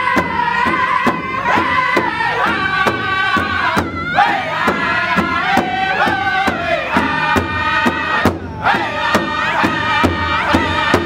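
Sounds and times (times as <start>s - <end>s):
large drum beating: 0.0s - 11.0s
men singing in unison: 0.0s - 11.0s.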